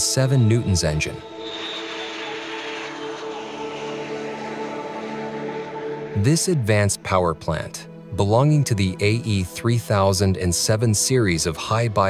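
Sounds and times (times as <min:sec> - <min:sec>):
jet engine rush: 0:01.2 - 0:06.6.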